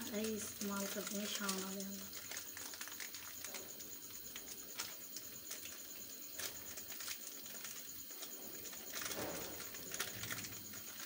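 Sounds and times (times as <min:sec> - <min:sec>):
curry bubbling in a pan: 0:00.0 - 0:11.0.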